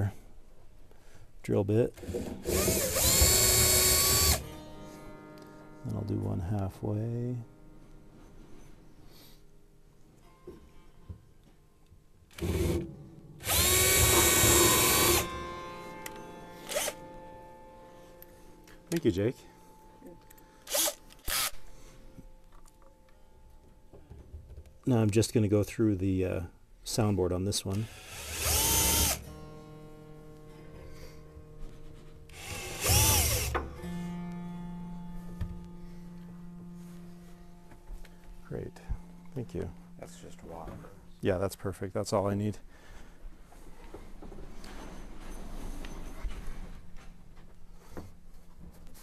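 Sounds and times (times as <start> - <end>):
cordless drill spinning: 2.4 - 4.4, 13.4 - 15.3, 16.7 - 17.0, 20.7 - 21.6, 27.8 - 29.2, 32.3 - 33.5
piano strings ringing: 4.4 - 9.3, 14.1 - 26.4, 33.3 - 42.6.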